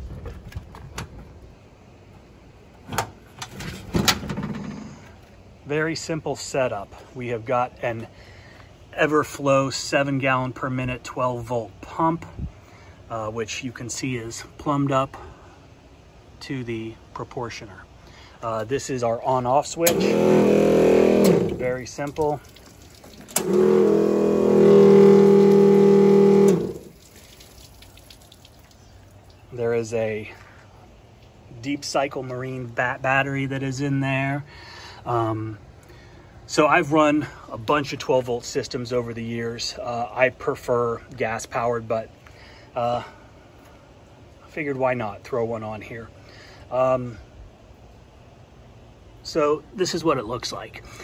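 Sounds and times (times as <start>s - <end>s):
pump humming: 19.6s - 30.4s
pump switch click: 19.8s - 20.2s, 23.2s - 23.8s.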